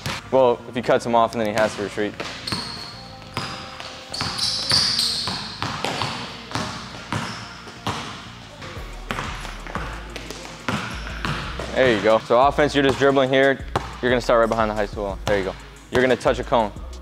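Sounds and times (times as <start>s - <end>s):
sneakers squeaking on court: 1.4s - 14.6s, 15.2s - 16.3s
basketball dribbling on wooden floor: 1.6s - 8.2s, 8.8s - 16.2s.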